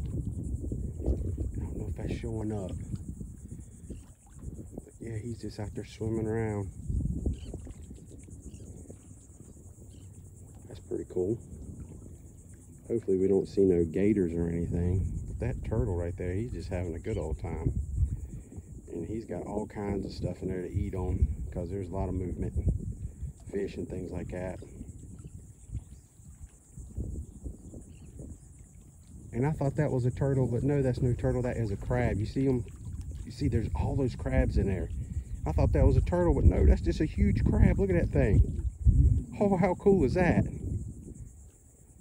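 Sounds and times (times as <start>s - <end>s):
insects pulsing chorus: 0.0s - 42.0s
faint low rumble: 9.2s - 42.0s.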